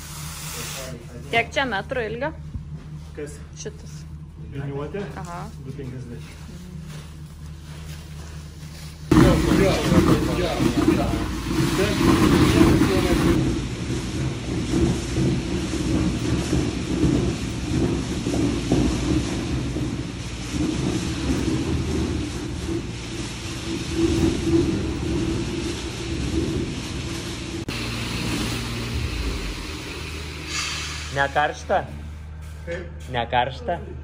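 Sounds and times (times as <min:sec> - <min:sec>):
screed pump rumbling: 0:00.0 - 0:32.4.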